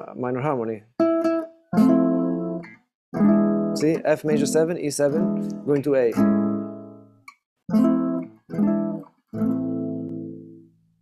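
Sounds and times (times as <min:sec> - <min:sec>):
classical guitar chords: 0:01.0 - 0:10.8.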